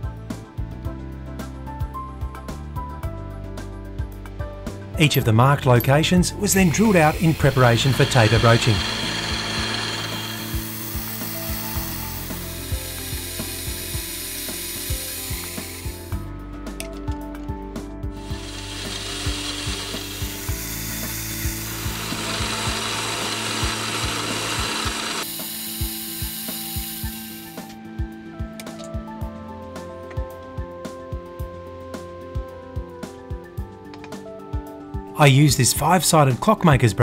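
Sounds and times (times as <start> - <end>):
background music with clicking beat: 0.0 - 35.3
drill press cutting metal: 6.5 - 16.1, 18.2 - 27.8.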